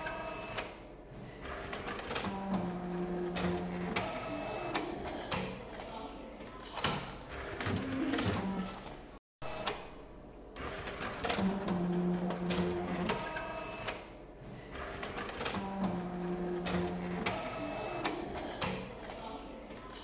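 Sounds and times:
printer motor whine: 0:00.0 - 0:00.8, 0:02.2 - 0:04.9, 0:10.7 - 0:14.1, 0:15.4 - 0:18.3
printer clicks and clatter: 0:01.4 - 0:05.9, 0:10.6 - 0:20.0.

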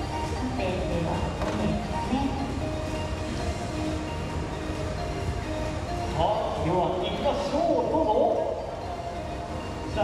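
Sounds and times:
crowd noise: 0:00.0 - 0:10.0
faint background music: 0:00.0 - 0:10.0.

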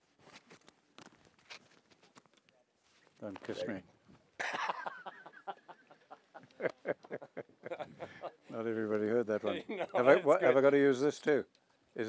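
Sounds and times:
person laughing: 0:04.4 - 0:08.3.

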